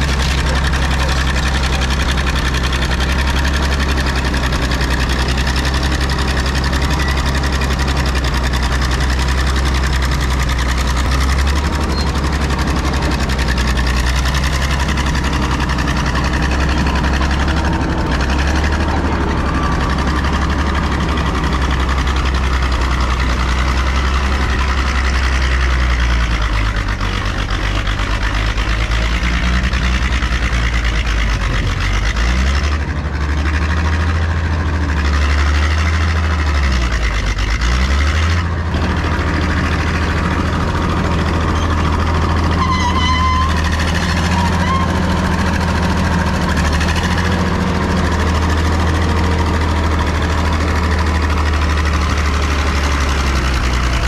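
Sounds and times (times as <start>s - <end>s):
bulldozer diesel engine running: 0.0s - 54.0s
bulldozer pushing through brush: 0.0s - 54.0s.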